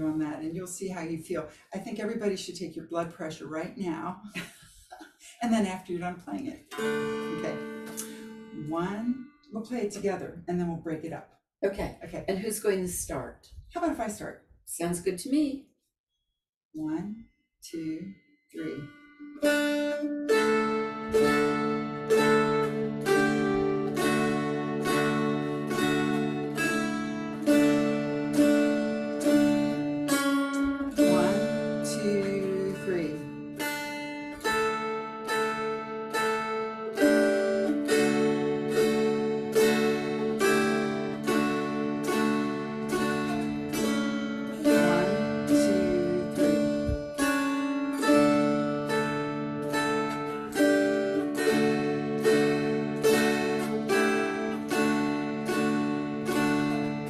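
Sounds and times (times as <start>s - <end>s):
mountain dulcimers plucking melody: 5.9s - 10.1s, 18.6s - 57.0s.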